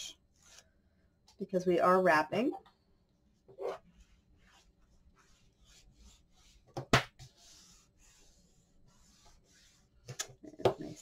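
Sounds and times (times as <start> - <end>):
hand rubbing paper: 3.9 - 10.2.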